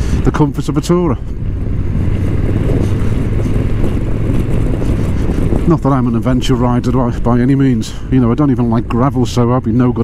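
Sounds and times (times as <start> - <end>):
motorcycle engine running: 0.0 - 9.9
wind noise on microphone: 0.0 - 10.0.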